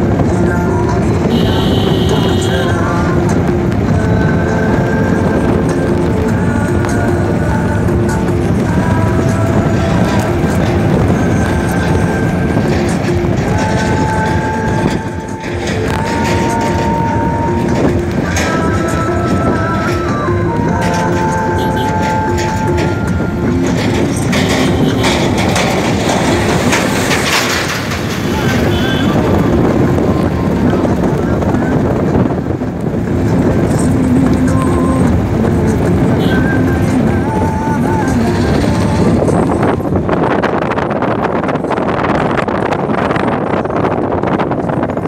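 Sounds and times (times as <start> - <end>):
music or voices: 0.0 - 40.2
road and engine noise: 0.0 - 45.0.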